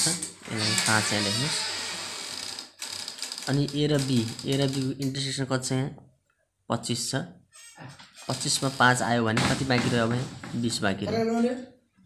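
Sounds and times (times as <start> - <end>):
person speaking: 3.4 - 6.1, 6.7 - 11.8.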